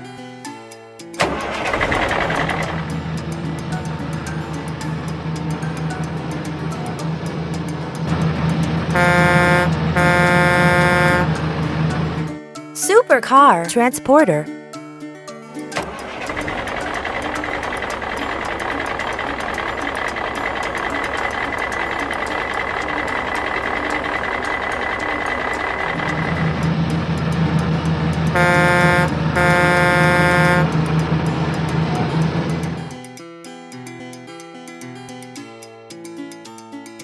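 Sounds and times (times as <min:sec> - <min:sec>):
truck engine running: 0:01.2 - 0:12.4, 0:15.8 - 0:33.0
truck horn blasts: 0:08.8 - 0:11.5, 0:28.3 - 0:31.0.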